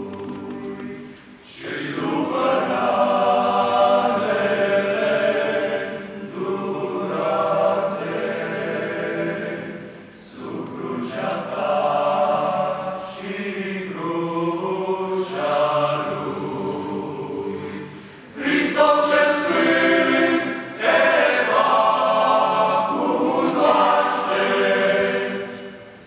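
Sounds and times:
male choir singing a hymn: 0.0 - 26.0.

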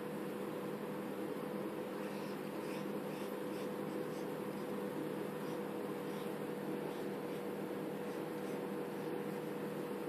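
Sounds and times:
background hum and hiss: 0.0 - 10.0
pen nib scratching on screen: 2.0 - 10.0.

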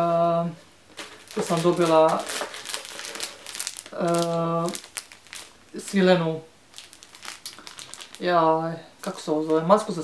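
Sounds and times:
plastic bag crinkling: 0.9 - 10.0.

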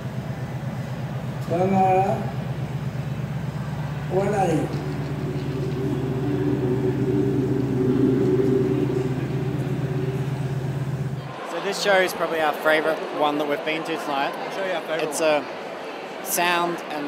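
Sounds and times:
low droning hum: 0.2 - 11.4
high sustained drone: 1.1 - 11.4.

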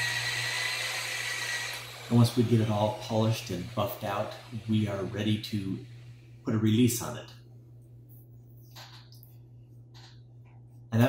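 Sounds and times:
electric polisher whining: 0.0 - 6.0.

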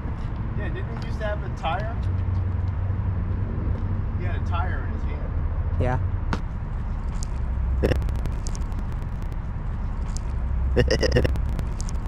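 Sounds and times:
road noise: 0.0 - 12.0
wind rumble on microphone: 0.0 - 12.0.

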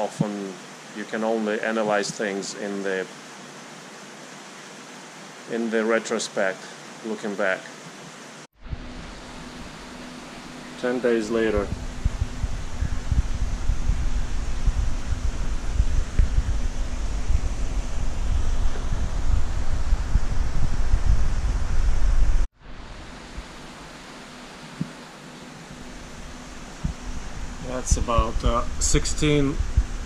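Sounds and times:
aquarium water hiss: 0.0 - 30.0
faint pump hum: 0.0 - 30.0
uneven low rumble: 8.6 - 24.9, 25.6 - 30.0.

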